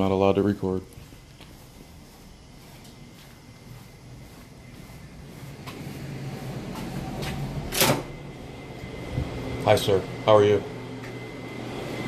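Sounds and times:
footsteps: 0.0s - 12.0s
low hum: 0.2s - 12.0s.

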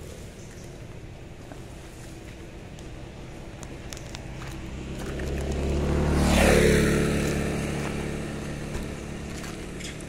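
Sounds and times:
motor vehicle passing by: 0.0s - 10.0s.

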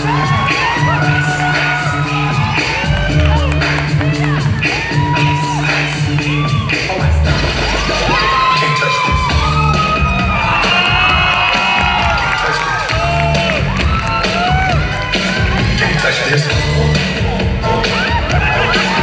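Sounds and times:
audience cheering and whooping: 0.0s - 19.0s
dance music over loudspeakers: 0.0s - 19.0s.

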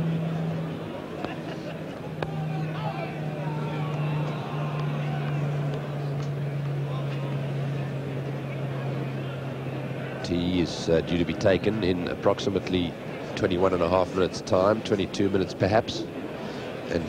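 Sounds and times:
low hum: 0.0s - 10.3s
crowd murmur: 0.0s - 17.0s
distant voices: 0.0s - 17.0s.

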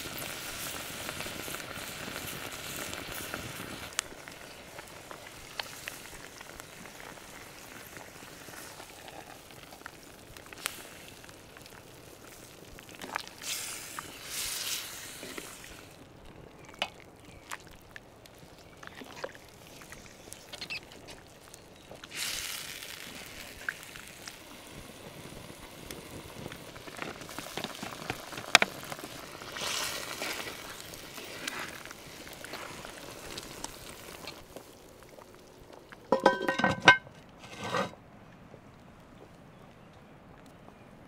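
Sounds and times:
liquid simmering in a pot: 0.0s - 37.6s
metal lid clanking on pot: 36.1s - 38.0s.

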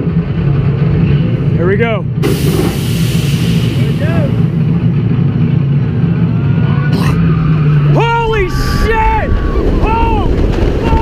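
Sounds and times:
hydraulic launch drone: 2.2s - 4.7s.

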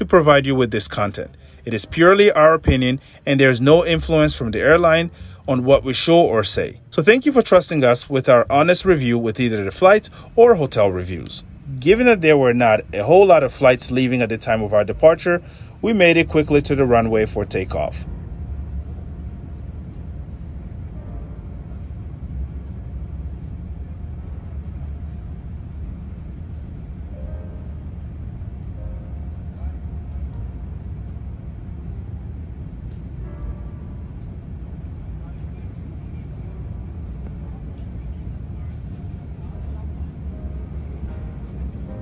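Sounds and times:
airframe rolling on taxiway: 0.0s - 42.0s
airplane engines taxiing: 0.0s - 42.0s
runway rumble: 8.1s - 42.0s.

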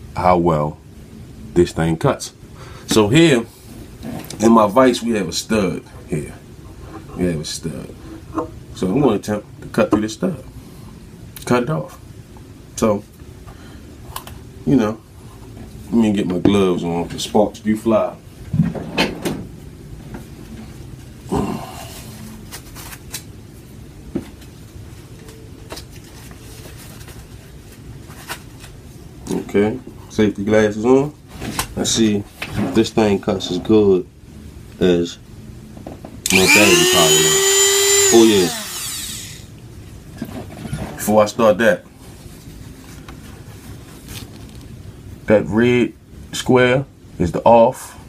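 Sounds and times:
work gloves rustling: 42.0s - 44.7s.

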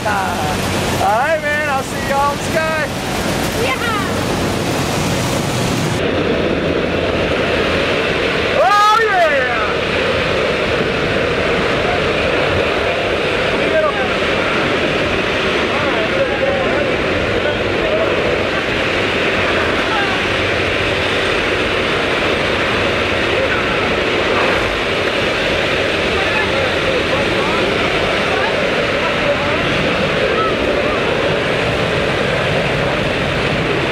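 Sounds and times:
aircraft engine noise: 0.0s - 33.9s
wind rushing: 0.0s - 33.9s
faint voices: 23.1s - 33.7s.

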